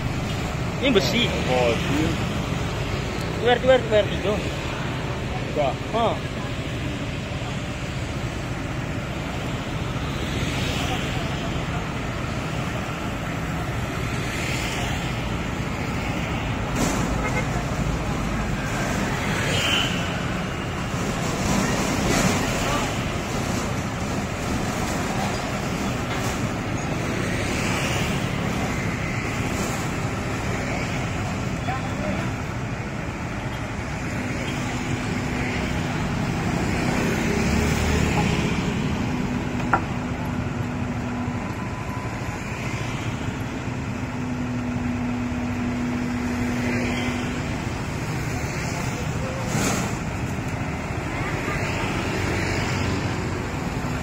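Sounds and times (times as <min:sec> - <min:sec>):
road traffic: 0:00.0 - 0:54.0.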